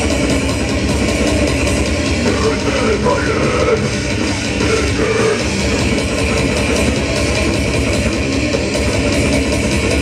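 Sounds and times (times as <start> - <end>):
distorted electric guitar riffing: 0.0 - 10.0
fast dense drumming: 0.0 - 10.0.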